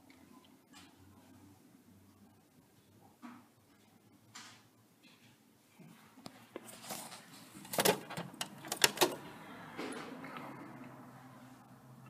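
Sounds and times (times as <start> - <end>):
washing machine clicks and knocks: 7.7 - 9.2.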